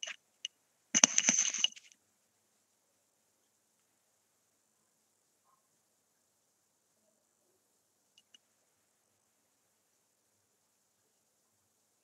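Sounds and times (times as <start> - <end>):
crackling clicks and rustle: 0.0 - 2.0.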